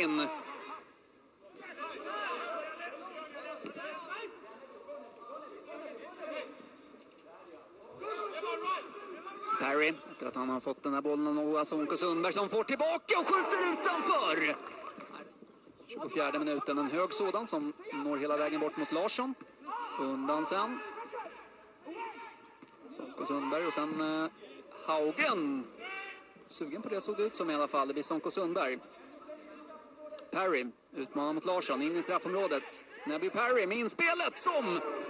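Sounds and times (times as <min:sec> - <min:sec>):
men calling out: 0:00.0 - 0:06.8, 0:07.7 - 0:10.3, 0:11.8 - 0:27.3, 0:31.6 - 0:35.0
faint background hiss: 0:00.0 - 0:35.0
man commentating: 0:07.6 - 0:15.2, 0:16.0 - 0:35.0.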